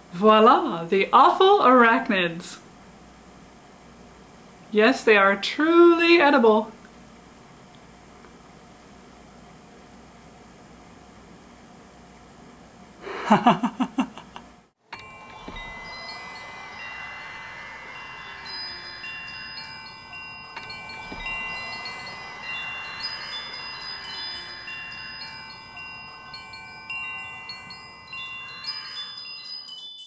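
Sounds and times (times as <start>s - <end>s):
chimes ringing: 14.9s - 30.0s.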